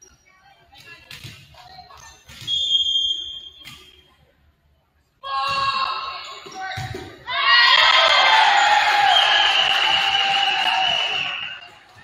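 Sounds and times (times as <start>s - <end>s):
crowd cheering and shouting: 7.3s - 11.9s.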